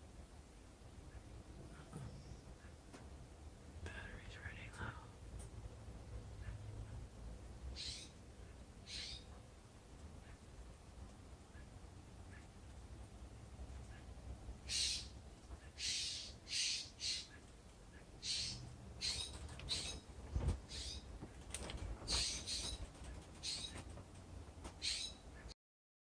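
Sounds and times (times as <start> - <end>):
jay harsh raspy calls: 14.7 - 17.4.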